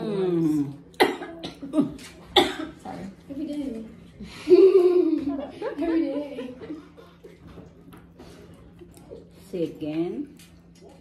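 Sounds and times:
person coughing: 1.0s - 2.8s.

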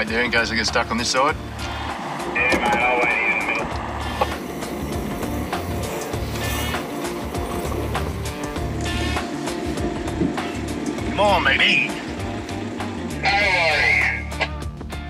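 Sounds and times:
vehicle engine running: 0.0s - 14.4s
music with bass beat: 0.1s - 15.0s.

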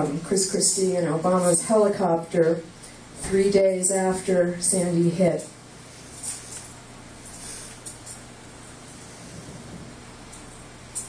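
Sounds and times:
steady hiss: 5.7s - 11.0s.

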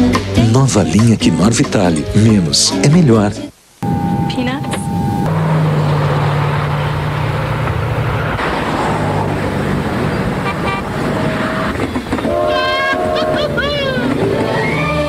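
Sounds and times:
higher wavering tone: 3.8s - 6.0s
low horn tone: 3.8s - 6.0s, 10.4s - 13.5s
street traffic noise: 3.8s - 15.0s.

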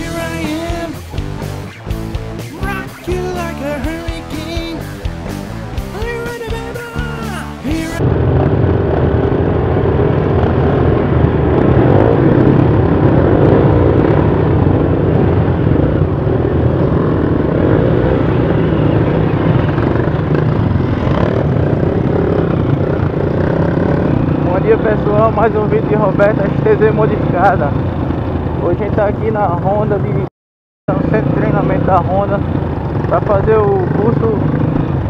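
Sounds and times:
dirt bike engines rumbling: 0.0s - 30.3s, 30.9s - 35.0s.

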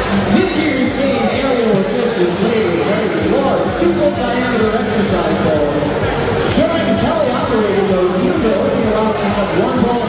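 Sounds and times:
crowd din in gymnasium: 0.0s - 10.0s
man speaking over public address: 0.0s - 10.0s.

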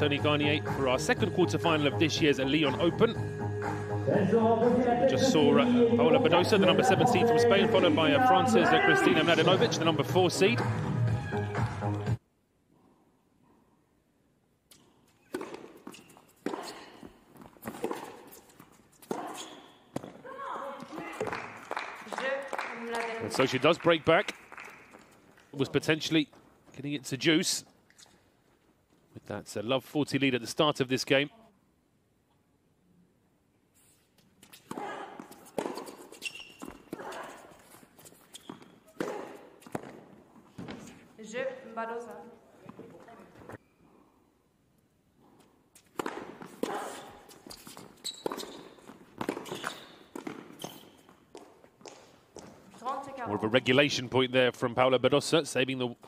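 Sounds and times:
tennis ball racket hits: 15.2s - 20.2s, 34.4s - 37.6s, 45.8s - 52.0s
footsteps on court: 45.8s - 53.1s.

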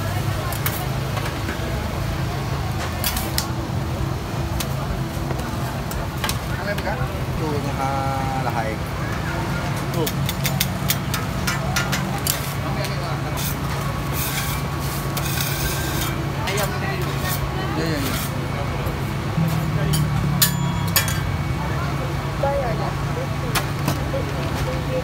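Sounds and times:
crowd chatter: 0.0s - 25.0s.

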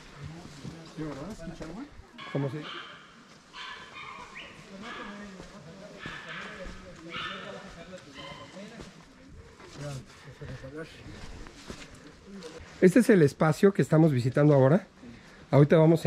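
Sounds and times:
people conversing: 0.0s - 16.0s.

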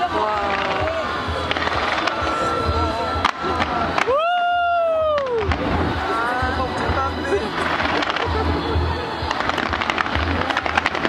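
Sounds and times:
voices: 0.0s - 4.1s, 4.9s - 11.0s
fireworks sharp bangs: 0.0s - 4.2s, 7.5s - 8.6s, 9.2s - 11.0s
music: 0.0s - 11.0s
fireworks low booms: 9.2s - 11.0s.

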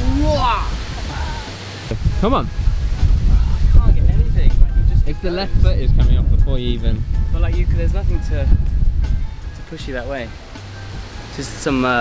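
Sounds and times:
person's drawn-out vocal exclamation: 0.0s - 1.6s
faint background music: 0.0s - 12.0s
low rumble: 1.9s - 9.8s.

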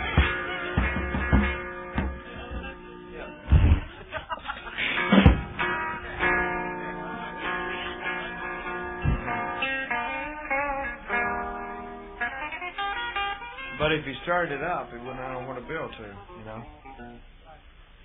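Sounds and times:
plucked guitar music: 0.0s - 17.5s
low thump: 3.5s - 4.0s, 5.2s - 5.6s, 9.0s - 9.4s.

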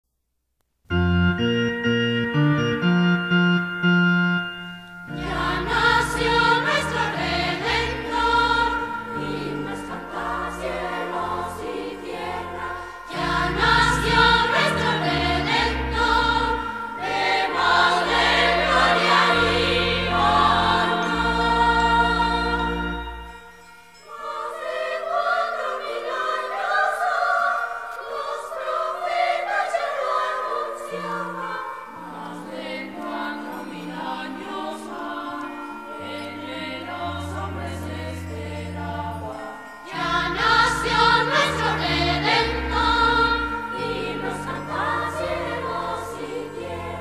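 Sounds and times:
bass line and accompaniment: 0.9s - 23.6s, 32.5s - 47.0s
instrumental held chords: 0.9s - 47.0s
choir singing: 5.0s - 47.0s.

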